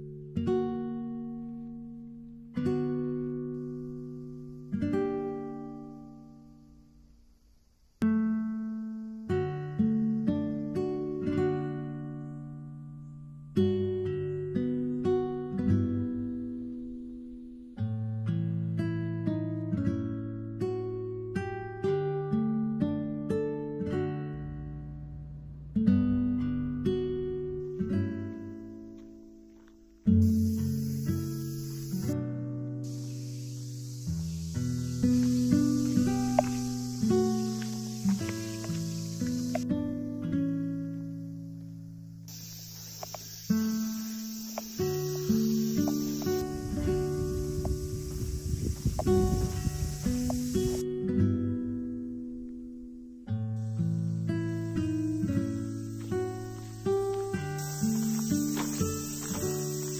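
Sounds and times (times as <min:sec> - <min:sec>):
acoustic guitar strumming and picking: 0:17.8 - 0:59.9.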